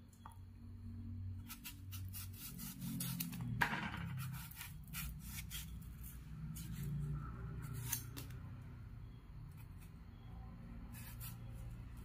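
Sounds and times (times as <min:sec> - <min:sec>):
knife sawing through watermelon rind: 0:01.4 - 0:03.4, 0:04.2 - 0:06.9, 0:10.9 - 0:11.7.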